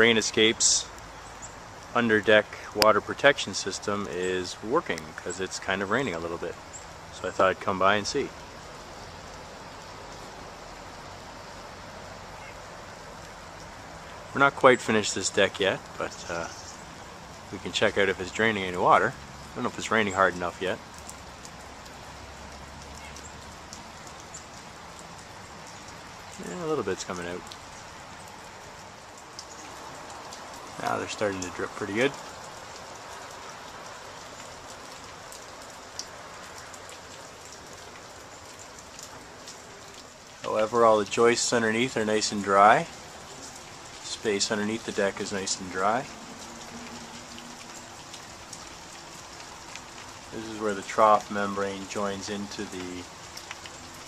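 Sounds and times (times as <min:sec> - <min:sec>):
light rain hissing: 0:00.0 - 0:54.0
raindrops ticking: 0:00.0 - 0:54.0
water dripping: 0:00.0 - 0:54.0.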